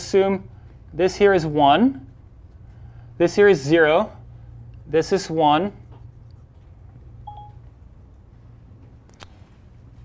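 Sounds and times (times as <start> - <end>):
low room hum: 0.0 - 10.0
short beep: 7.3 - 7.6.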